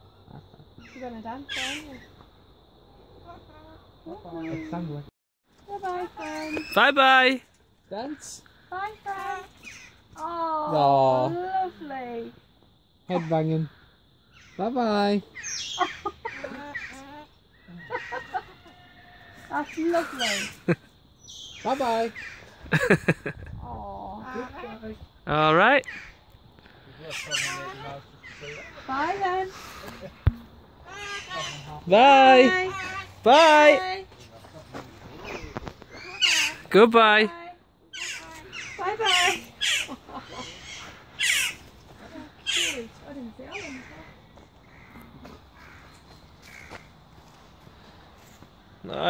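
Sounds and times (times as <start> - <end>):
cockatoo laugh-like calls: 15.5 - 19.1, 38.0 - 42.9
bird squawking harshly: 20.1 - 20.6, 27.1 - 29.1, 30.8 - 31.8, 35.2 - 36.7, 37.9 - 41.6, 42.4 - 42.9.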